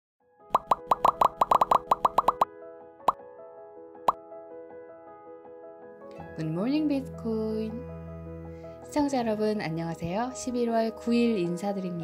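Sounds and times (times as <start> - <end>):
bubbly plop sound effects: 0.5 - 2.5.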